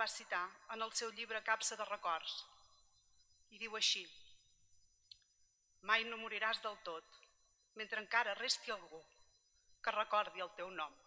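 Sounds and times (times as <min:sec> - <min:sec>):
woman reading aloud: 0:00.0 - 0:02.4, 0:05.8 - 0:07.1, 0:07.8 - 0:09.0, 0:09.9 - 0:11.0
faint click: 0:05.1 - 0:05.3.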